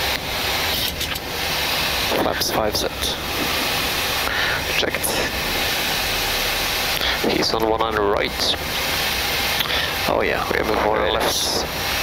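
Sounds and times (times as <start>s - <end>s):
aircraft engine noise: 0.0s - 12.0s
airflow rush in cockpit: 0.0s - 12.0s.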